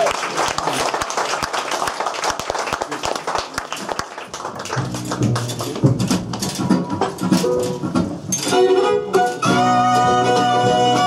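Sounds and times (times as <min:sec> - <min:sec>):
audience applause: 0:00.0 - 0:05.9
stringed instruments playing notes: 0:04.8 - 0:11.0.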